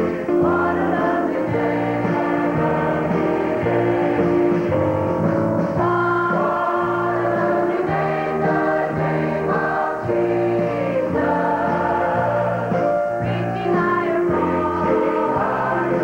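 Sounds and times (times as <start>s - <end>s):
choir singing a hymn: 0.0s - 16.0s
piano accompaniment: 0.0s - 16.0s.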